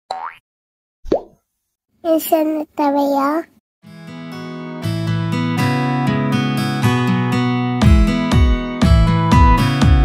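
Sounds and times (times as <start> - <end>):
cartoon pop bloops: 0.1 - 0.4, 1.0 - 1.4.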